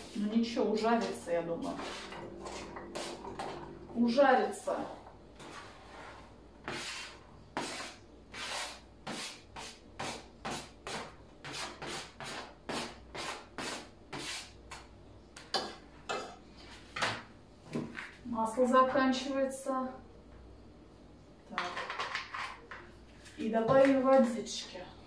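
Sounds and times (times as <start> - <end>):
knife scraping cutting board: 1.0 - 3.6, 5.4 - 14.6, 22.1 - 23.4.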